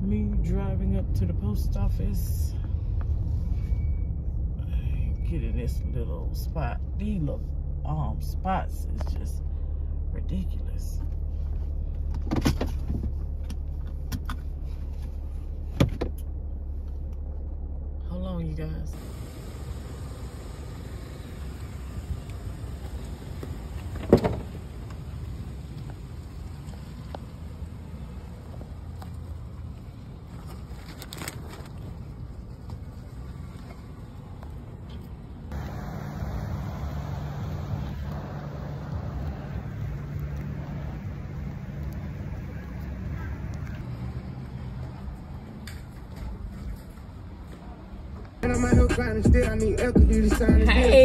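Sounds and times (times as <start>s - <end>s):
low engine drone: 0.0s - 30.2s, 30.8s - 46.9s
low hum of vehicles: 0.0s - 51.0s.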